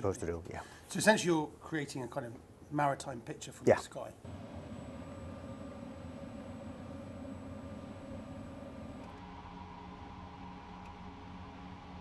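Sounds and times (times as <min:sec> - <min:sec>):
faint hiss: 0:00.0 - 0:09.1
low hum: 0:04.2 - 0:12.0.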